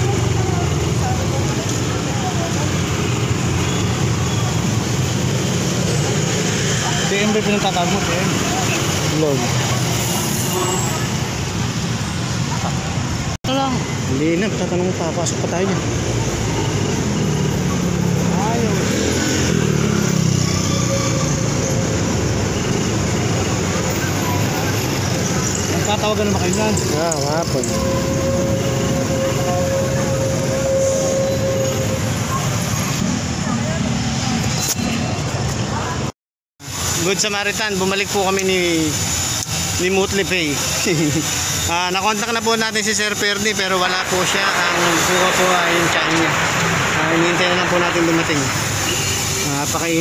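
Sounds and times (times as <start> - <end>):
traffic rumble: 0.0 - 50.0
vehicle engines running: 0.0 - 50.0
thin steady whine: 38.2 - 49.9.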